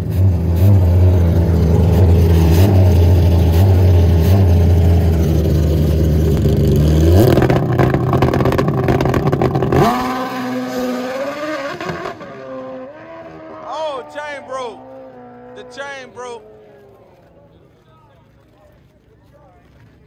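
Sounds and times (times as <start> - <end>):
motorcycle engine revving: 0.0 - 17.3.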